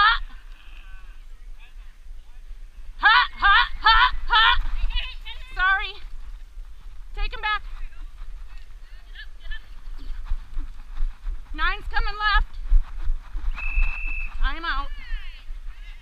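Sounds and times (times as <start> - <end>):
wind rumble on microphone: 0.0 - 16.0
hooves thumping in dirt: 3.9 - 16.0.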